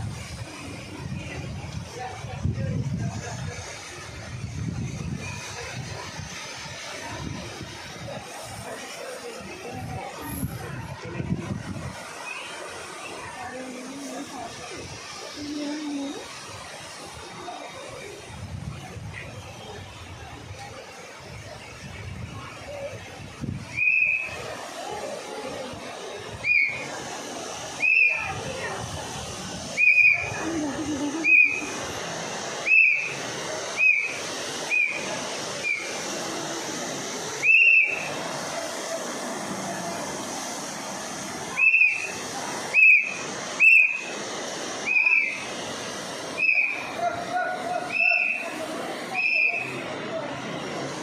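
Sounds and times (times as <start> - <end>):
rushing river water: 0.0 - 51.0
water jet spraying: 0.0 - 51.0
high whistle notes: 23.7 - 24.4, 29.8 - 30.3, 32.6 - 33.1, 33.8 - 35.0, 37.4 - 38.1, 41.6 - 42.1, 44.8 - 45.4, 46.4 - 46.9, 49.2 - 49.8.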